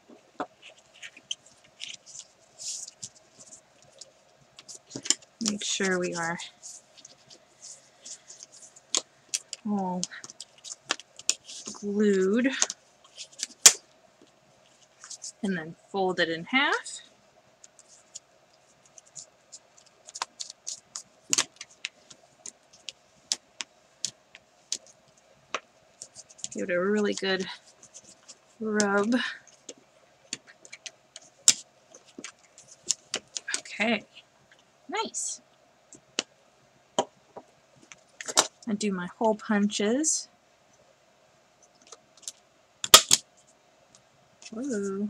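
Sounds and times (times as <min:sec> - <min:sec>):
stiff paper crackling: 0:00.5 - 0:11.9.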